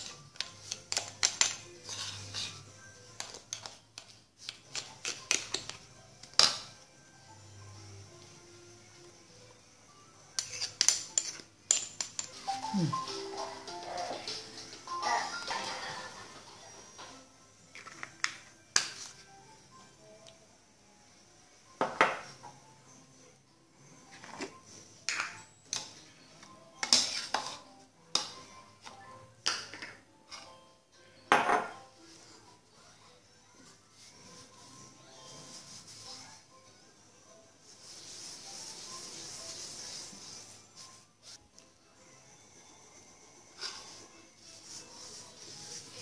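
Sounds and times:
metal spoons scraping a bowl: 0.0s - 3.8s, 10.3s - 12.6s, 26.8s - 28.4s
faint background music: 0.0s - 46.0s.

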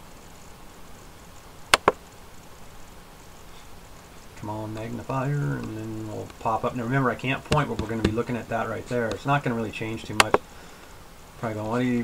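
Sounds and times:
faint room hiss: 0.0s - 12.0s
computer mouse button clicks: 1.8s - 2.0s.

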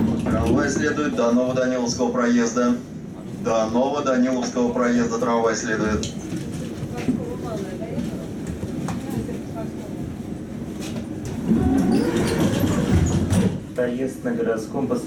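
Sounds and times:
tram interior rumble: 0.0s - 15.0s.

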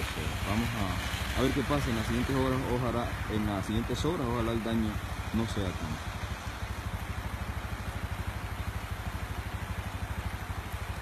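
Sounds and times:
small engine idling: 0.0s - 11.0s.

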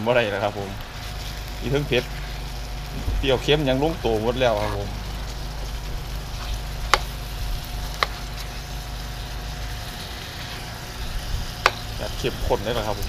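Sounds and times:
food sizzling in a wok: 0.0s - 13.0s.

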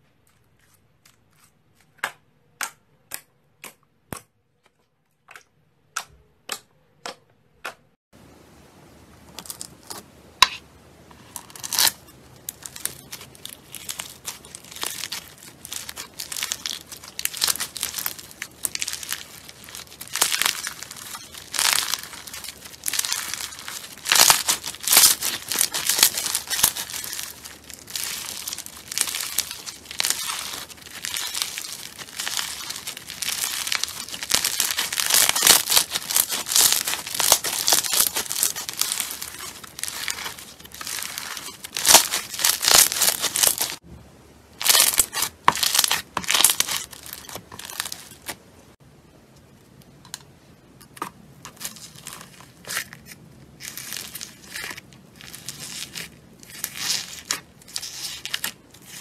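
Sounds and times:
foam slime crackling: 11.1s - 43.8s, 44.6s - 48.4s, 51.4s - 59.0s.

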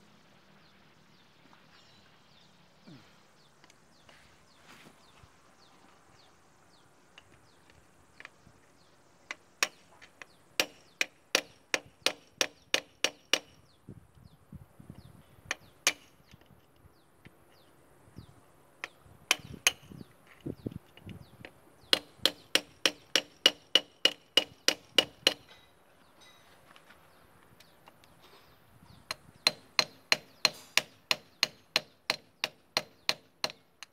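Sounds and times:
hammer striking steel chisel: 18.8s - 19.9s, 21.9s - 26.4s, 29.5s - 33.9s.

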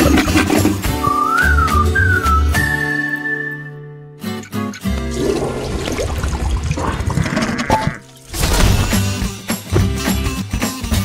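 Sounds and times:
cartoon toilet flush: 0.0s - 1.2s, 5.0s - 9.2s.

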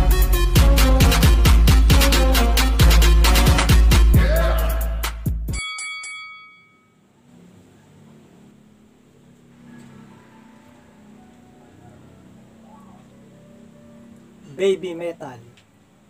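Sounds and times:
bell-like chime: 5.5s - 7.0s.

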